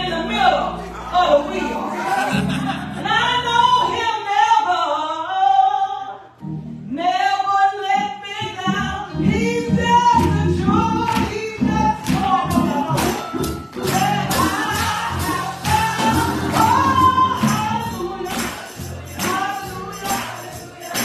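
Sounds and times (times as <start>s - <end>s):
woman singing gospel: 0.0s - 6.2s, 6.9s - 21.0s
low instrumental accompaniment: 8.6s - 20.3s
steady beat: 8.7s - 21.0s.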